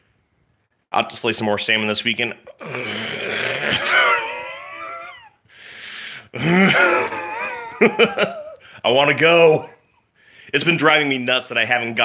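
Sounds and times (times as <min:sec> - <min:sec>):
man whining laugh: 0:02.6 - 0:05.4, 0:06.4 - 0:08.6
breathy exhale: 0:05.5 - 0:06.3.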